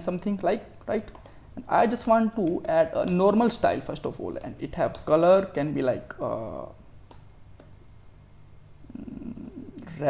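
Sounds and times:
faint electrical hum: 0.0s - 10.0s
man humming hesitantly: 8.8s - 10.0s.

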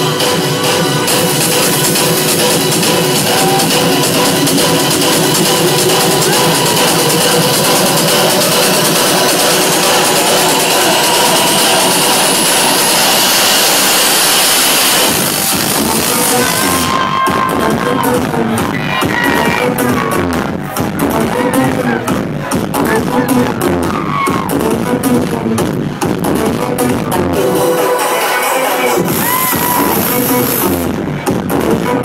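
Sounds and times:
electronic trance music: 0.0s - 32.0s
high rising sweep: 1.4s - 17.9s.

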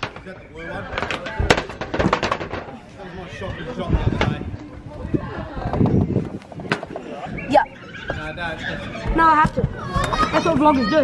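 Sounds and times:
footsteps on corrugated roof: 8.9s - 11.0s.

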